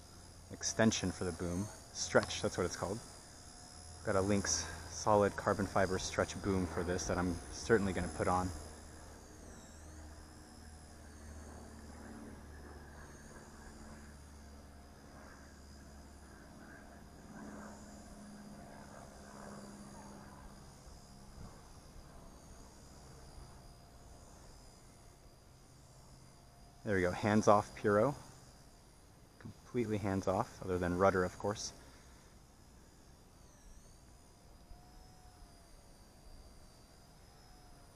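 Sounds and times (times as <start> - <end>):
toy helicopter motor whine: 0.0 - 29.1, 30.0 - 37.9.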